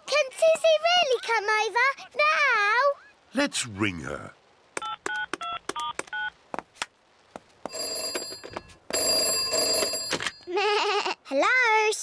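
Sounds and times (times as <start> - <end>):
telephone dialling beeps: 4.8 - 6.3
person answering phone: 7.7 - 10.5
telephone ringing: 7.7 - 10.5.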